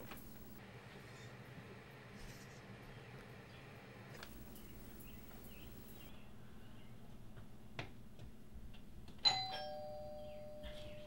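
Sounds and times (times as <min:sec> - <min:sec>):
two-note doorbell chime: 0:09.3 - 0:11.0.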